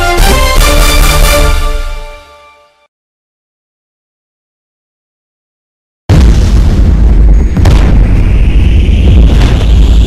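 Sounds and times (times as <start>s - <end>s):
loud boom with deep rumble: 6.1s - 10.0s.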